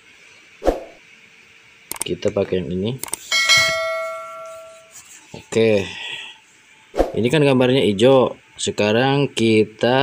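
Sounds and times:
bright bell ding: 3.3s - 5.0s.

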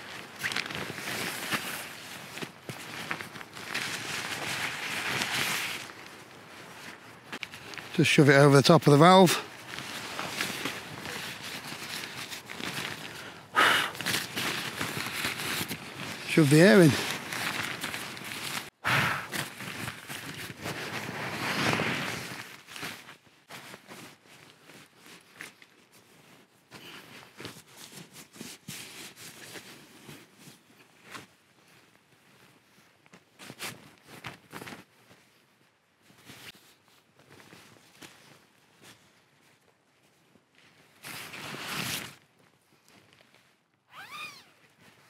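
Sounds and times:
nylon fabric rustling: 0.0s - 8.0s, 8.9s - 45.0s.

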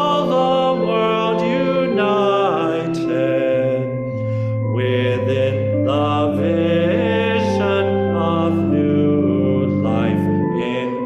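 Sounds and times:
person singing a hymn: 0.0s - 11.0s
sustained instrumental accompaniment: 0.0s - 11.0s.

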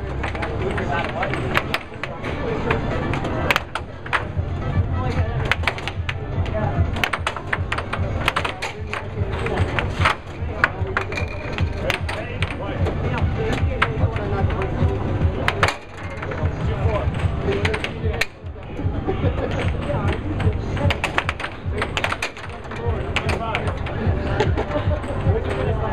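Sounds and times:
air hockey puck clacking: 0.1s - 18.6s, 19.3s - 25.8s.

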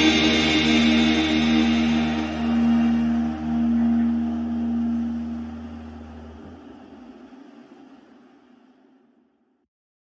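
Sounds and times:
ambient drone music: 0.0s - 9.2s.

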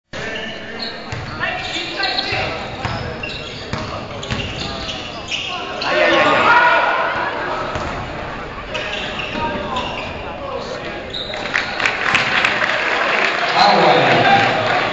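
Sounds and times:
people shouting in a hall: 5.6s - 7.7s, 12.0s - 14.9s.

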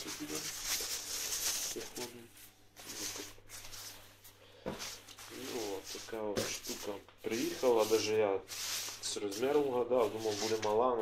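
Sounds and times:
man talking: 0.0s - 0.5s, 1.7s - 3.5s, 5.3s - 11.0s
fabric rustling: 0.0s - 11.0s.

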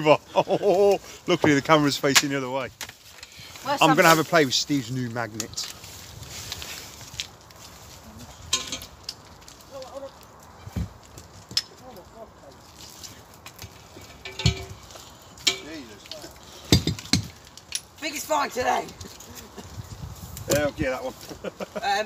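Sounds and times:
heavy thumps: 16.7s - 17.4s.

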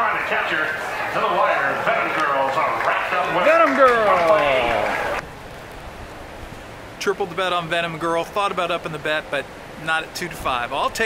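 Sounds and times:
announcer speaking: 0.0s - 5.2s
outdoor background hiss: 0.0s - 11.0s.

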